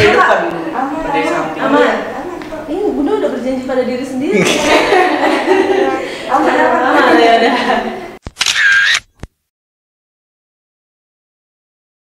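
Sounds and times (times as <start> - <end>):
camera shutter clicks: 8.2 - 9.3.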